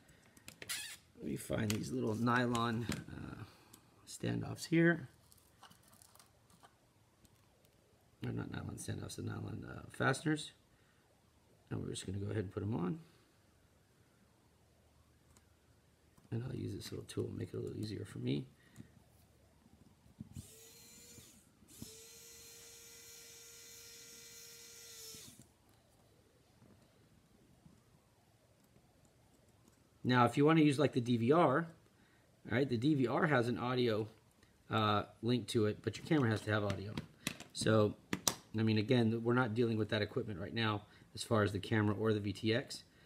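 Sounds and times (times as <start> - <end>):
faint clicks of small parts: 0.0 - 0.7, 5.2 - 8.4
electric screwdriver running: 20.4 - 25.4.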